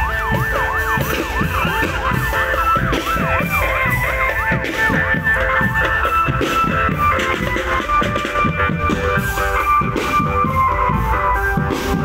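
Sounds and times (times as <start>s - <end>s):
marching drums beating: 0.0s - 12.0s
parade music over loudspeakers: 0.0s - 12.0s.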